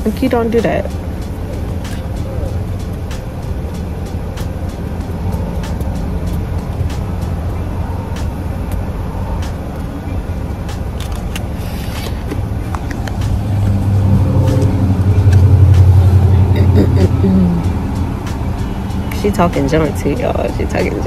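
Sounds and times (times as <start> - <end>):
car engine rumble from inside: 0.0 - 21.0.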